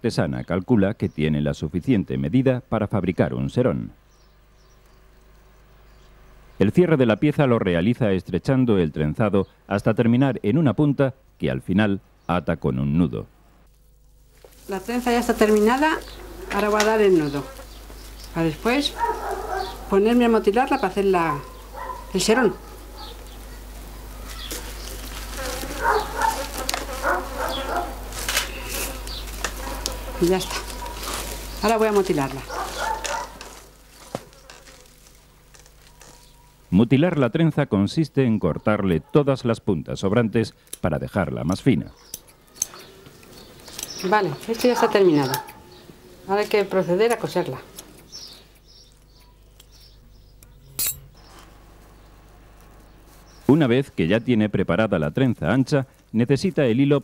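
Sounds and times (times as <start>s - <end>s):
dry grass rustling and crackling: 13.7s - 36.8s, 42.4s - 44.9s.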